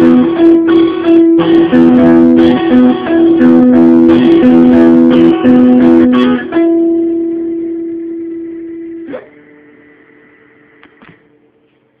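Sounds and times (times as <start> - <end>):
guitar pitch slide: 0.0 - 11.8
electric guitar note ringing: 0.0 - 12.0.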